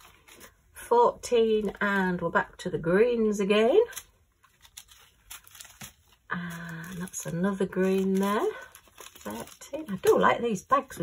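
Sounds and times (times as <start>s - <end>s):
plastic bags crinkling: 3.8s - 11.0s.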